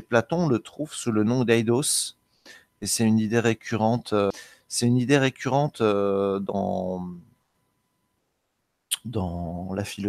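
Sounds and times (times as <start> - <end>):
man speaking: 0.0 - 2.2, 2.8 - 7.3, 8.9 - 10.0.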